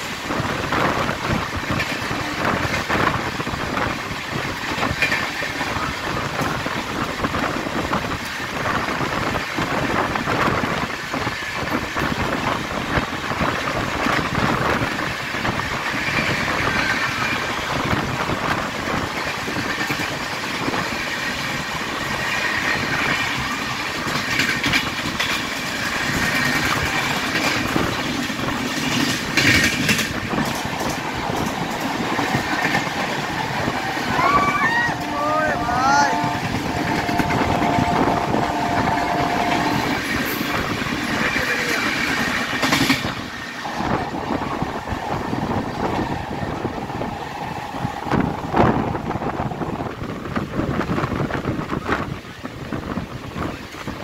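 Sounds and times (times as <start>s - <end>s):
passing express train: 0.0s - 54.0s
train rumble: 0.0s - 54.0s
wheels clattering over rail joints: 9.0s - 35.0s.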